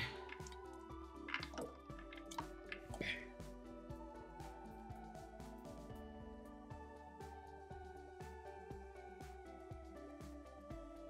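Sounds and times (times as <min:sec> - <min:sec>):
faint background music: 0:00.0 - 0:11.0
tablets plopping into liquid: 0:01.3 - 0:03.0.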